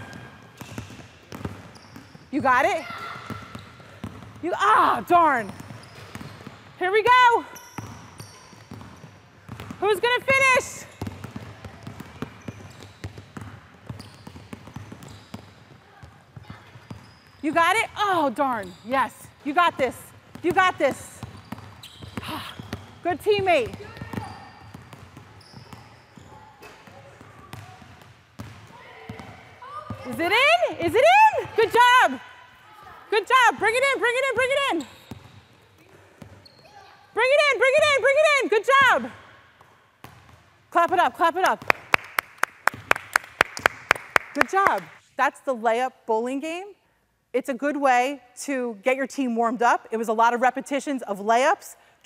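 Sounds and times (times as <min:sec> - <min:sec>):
basketballs dribbled on hardwood floor: 0:00.0 - 0:31.8, 0:37.3 - 0:44.0.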